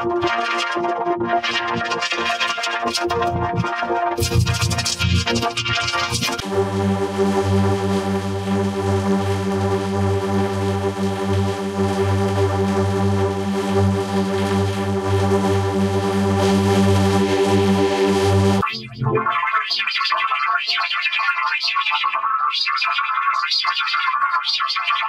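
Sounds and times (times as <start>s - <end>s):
buzzy synthesizer drone: 0.0s - 19.6s
bright choppy distorted sound: 4.2s - 19.6s.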